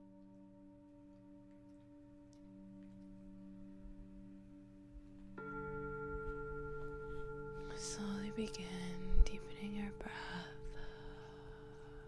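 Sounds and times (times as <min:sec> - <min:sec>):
singing bowl style music: 0:00.0 - 0:12.0
faint breathy noise: 0:10.0 - 0:12.0.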